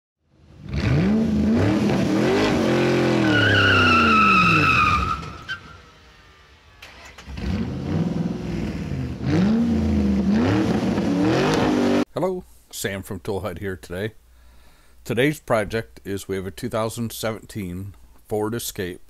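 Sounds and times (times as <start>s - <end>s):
car engine revving: 0.4s - 12.1s
tyre squeal: 3.0s - 5.9s.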